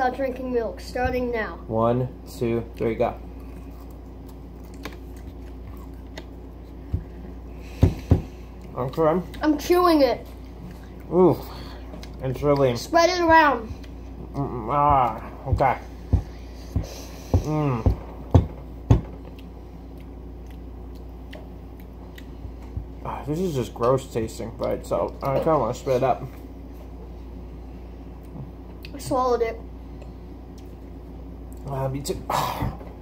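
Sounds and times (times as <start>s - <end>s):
steady low hum: 0.0s - 33.0s
people chewing crunchy food: 2.7s - 9.4s, 10.3s - 12.8s, 13.6s - 23.3s
dull thumps: 14.8s - 19.2s.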